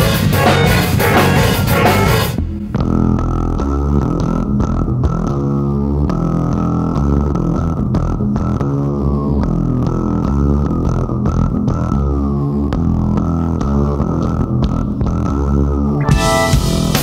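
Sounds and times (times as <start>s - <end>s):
electric bass guitar notes: 0.0s - 17.0s.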